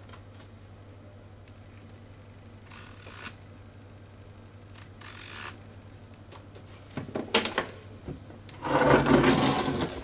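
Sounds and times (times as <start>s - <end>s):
metal panel scraping on wood: 8.6s - 10.0s.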